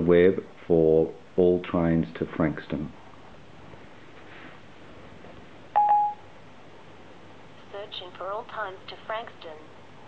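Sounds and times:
brief electronic beep: 0:05.8 - 0:06.2.

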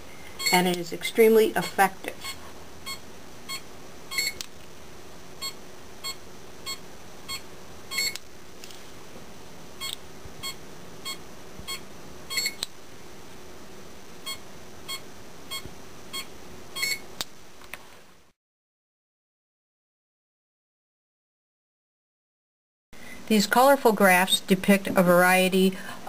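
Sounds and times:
short electronic beeps: 0:00.4 - 0:00.7, 0:01.6 - 0:04.4, 0:05.4 - 0:08.2, 0:09.8 - 0:12.6, 0:14.3 - 0:17.0.

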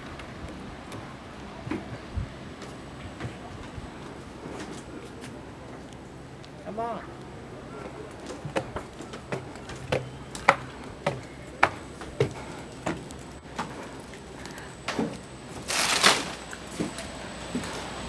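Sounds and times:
footsteps on wooden stairs: 0:07.8 - 0:15.7
rustling burst: 0:15.6 - 0:16.6.

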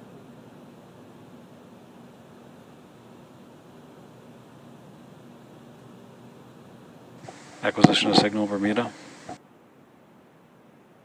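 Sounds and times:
faint steady hiss: 0:00.0 - 0:11.0
low hum: 0:07.2 - 0:09.4.

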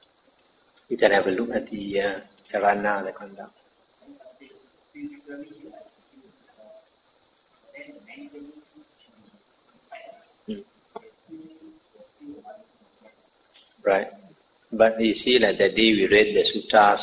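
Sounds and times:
crickets chirping: 0:00.0 - 0:17.0.

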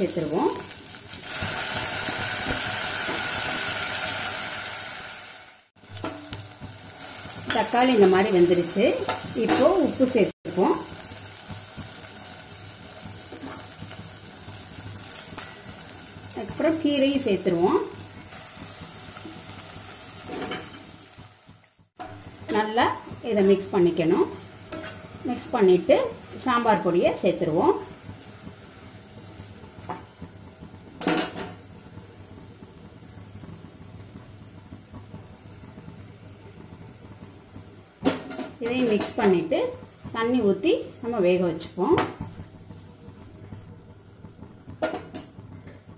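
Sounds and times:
vegetables sizzling in oil: 0:00.0 - 0:45.9
metal clank against pot: 0:44.8 - 0:45.4.

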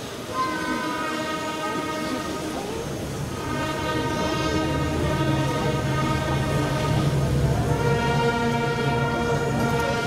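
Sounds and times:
brass band playing funeral march: 0:00.6 - 0:10.0.

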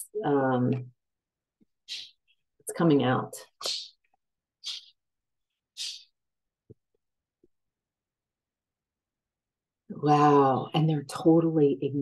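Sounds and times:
quick sharp breath: 0:04.6 - 0:05.0, 0:05.7 - 0:06.2.

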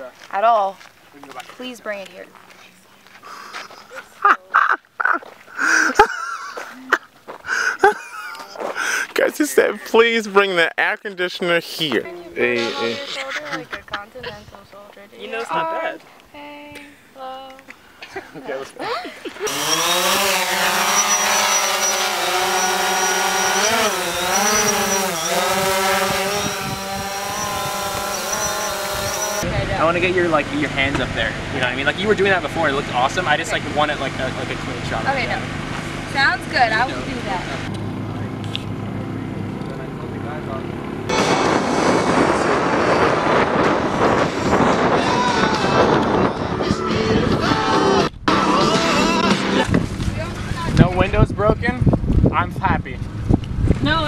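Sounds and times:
high-pitched laughter: 0:03.4 - 0:08.6, 0:12.6 - 0:14.4
drone propellers humming: 0:19.5 - 0:31.6, 0:32.5 - 0:50.7.

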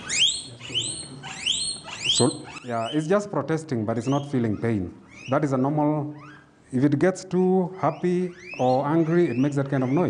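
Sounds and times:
guinea pig squealing: 0:00.0 - 0:10.0.

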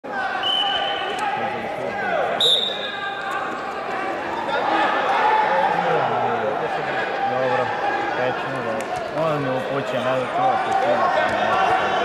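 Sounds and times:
voices echoing in a hall: 0:00.0 - 0:12.0
referee's whistle: 0:00.3 - 0:01.2, 0:02.4 - 0:03.2.

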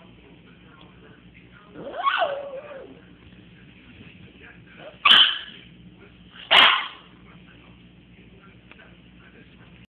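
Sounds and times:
small dog barking: 0:01.8 - 0:02.9, 0:04.9 - 0:05.6, 0:06.5 - 0:07.1.

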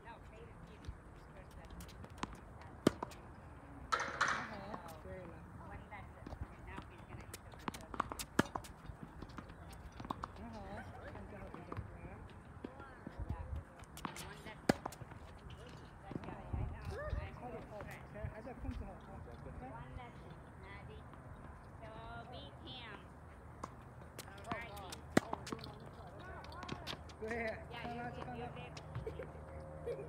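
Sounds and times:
outdoor background noise: 0:00.0 - 0:30.0
tennis balls bouncing on court: 0:00.8 - 0:18.9, 0:19.8 - 0:29.8
tennis balls struck by rackets: 0:01.8 - 0:05.4, 0:06.2 - 0:11.9, 0:13.9 - 0:15.2, 0:23.5 - 0:25.8.

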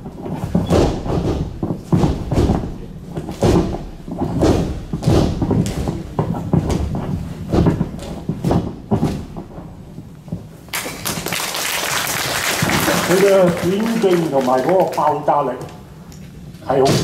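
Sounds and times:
stamping footwork on a mat: 0:00.0 - 0:11.4.

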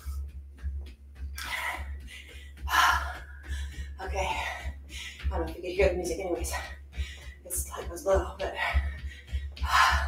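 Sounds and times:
woman breathing hard: 0:01.4 - 0:05.3, 0:06.8 - 0:07.4, 0:08.7 - 0:10.0.

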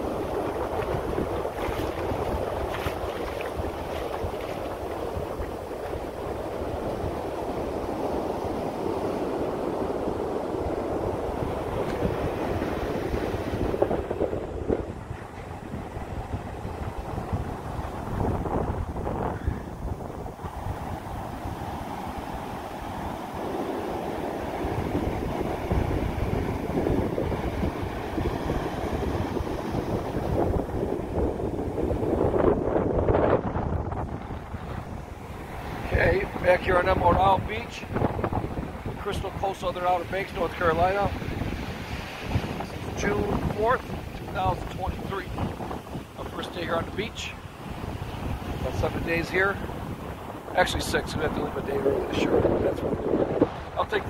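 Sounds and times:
ocean surf on sandy beach: 0:00.0 - 0:54.0
wind buffeting microphone: 0:00.0 - 0:54.0.

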